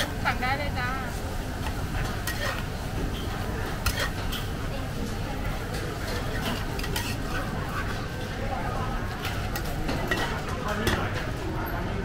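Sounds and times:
metal tongs scraping strainer: 3.8s - 4.2s.

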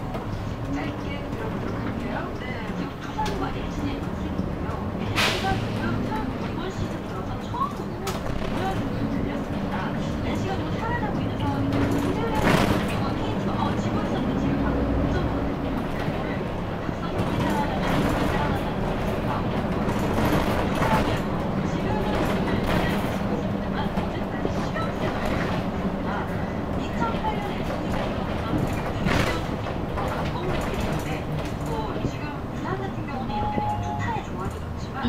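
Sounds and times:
bus engine and road noise: 0.0s - 35.0s.

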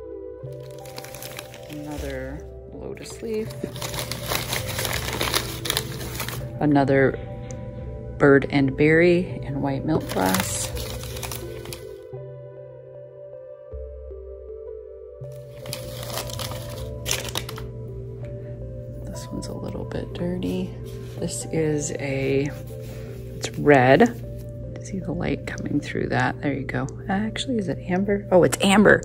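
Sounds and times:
soft background music: 0.0s - 29.0s
packing paper crinkling: 0.4s - 2.4s, 3.0s - 6.6s, 10.0s - 12.1s, 15.3s - 17.7s.

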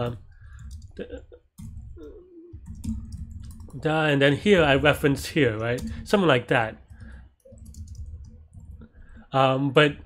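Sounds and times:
computer keyboard keystrokes: 1.6s - 3.8s, 6.8s - 8.9s.

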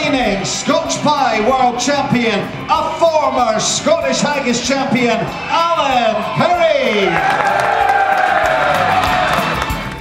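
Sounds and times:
background music: 0.0s - 10.0s
crowd cheering and applauding: 5.3s - 10.0s.

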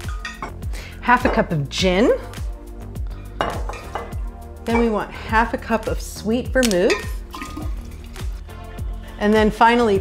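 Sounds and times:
metal cup clinking on glass pitcher: 0.0s - 0.6s, 3.4s - 5.0s, 6.9s - 7.6s
background music with steady beat: 0.0s - 10.0s.

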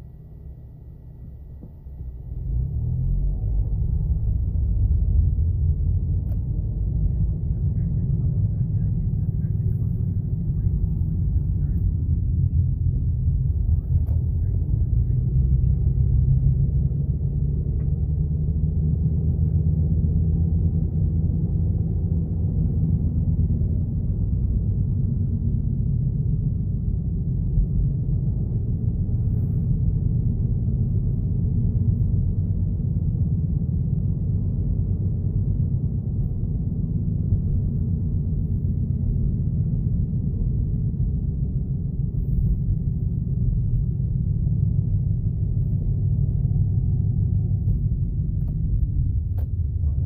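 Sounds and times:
car engine and road rumble: 0.0s - 50.0s.

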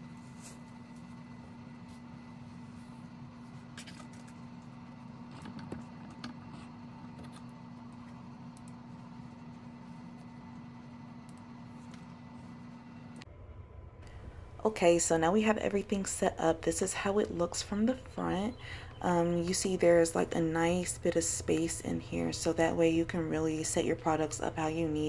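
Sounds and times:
low electrical hum: 0.0s - 25.0s.

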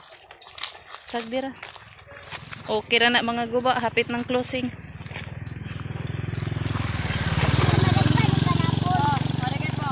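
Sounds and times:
motorcycle engine approaching: 1.7s - 9.9s.

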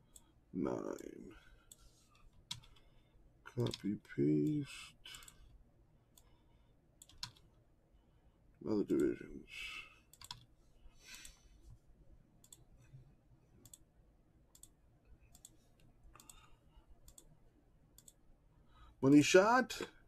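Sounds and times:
computer mouse clicks: 1.6s - 2.9s, 3.6s - 3.8s, 4.4s - 6.3s, 7.0s - 7.5s, 10.1s - 10.5s, 12.4s - 12.7s, 13.6s - 13.9s, 14.5s - 17.4s, 18.0s - 18.2s.

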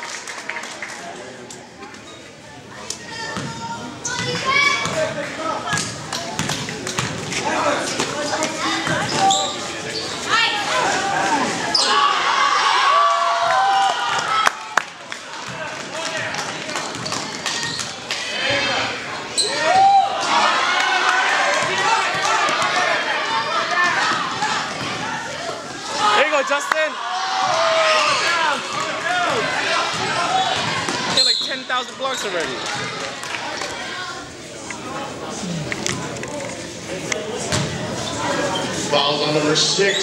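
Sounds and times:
basketball bouncing on gym floor: 3.3s - 5.1s, 37.5s - 37.8s
spectators shouting: 10.3s - 14.8s, 18.4s - 31.4s.

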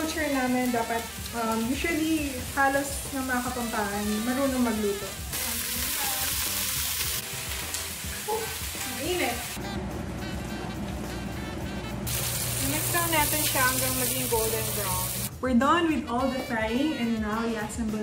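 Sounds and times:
food sizzling in hot oil: 0.0s - 9.6s, 12.1s - 15.3s
background music: 0.0s - 18.0s.

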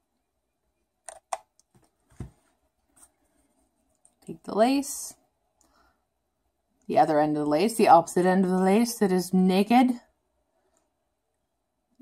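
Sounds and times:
faint clicks and taps: 1.0s - 3.2s, 3.8s - 4.3s.

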